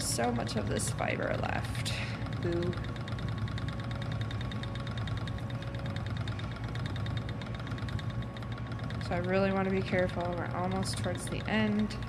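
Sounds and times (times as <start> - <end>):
spinning wheel whirring and ticking: 0.0 - 12.0.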